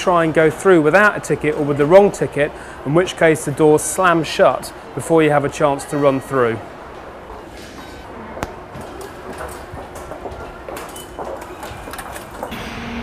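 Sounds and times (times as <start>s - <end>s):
steady background noise: 0.0s - 13.0s.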